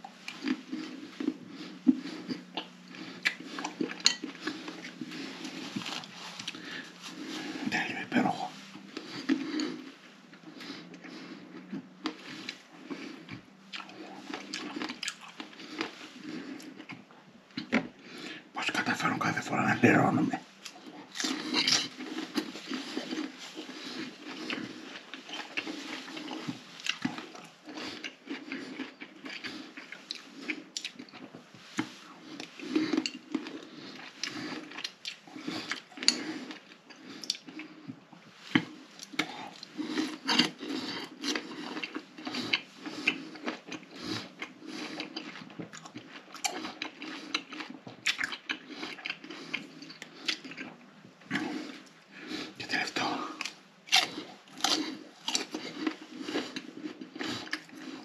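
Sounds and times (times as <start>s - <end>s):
man chewing fruit: 0.0s - 58.0s.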